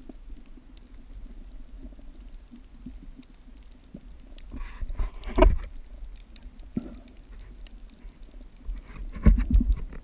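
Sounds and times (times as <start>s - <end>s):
faint reef ticking: 0.0s - 10.0s.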